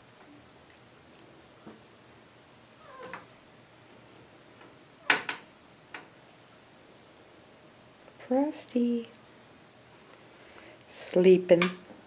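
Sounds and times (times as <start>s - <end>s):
cat meowing: 2.8s - 3.3s.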